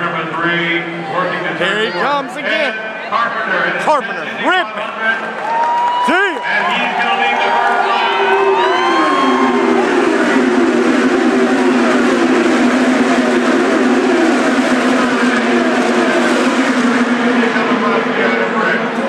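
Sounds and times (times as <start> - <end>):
race car engines drone: 0.0 - 19.0
race cars passing by: 0.0 - 19.0.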